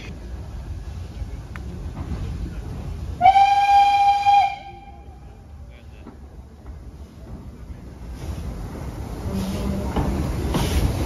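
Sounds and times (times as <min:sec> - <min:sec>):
locomotive low rumble: 0:00.0 - 0:11.0
steam locomotive whistle blast: 0:03.2 - 0:05.0.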